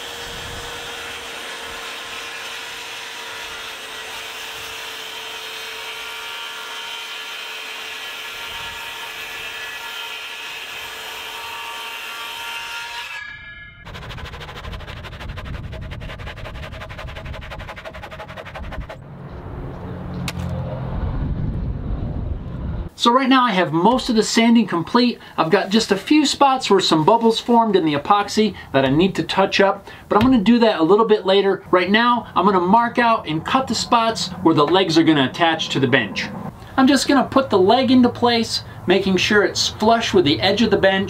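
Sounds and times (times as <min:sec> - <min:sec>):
circular saw cutting wood: 0:00.0 - 0:19.5, 0:30.9 - 0:38.4.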